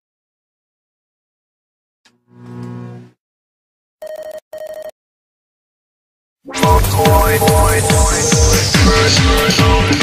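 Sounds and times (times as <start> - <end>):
electronic telephone ringing tone: 4.0 - 5.0.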